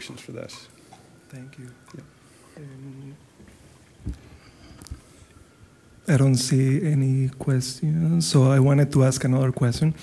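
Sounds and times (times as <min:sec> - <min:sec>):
low thumps: 0:04.0 - 0:05.0.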